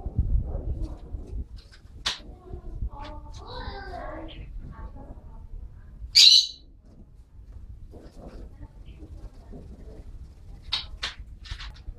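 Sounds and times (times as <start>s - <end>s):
bird high-pitched call: 6.2s - 6.6s.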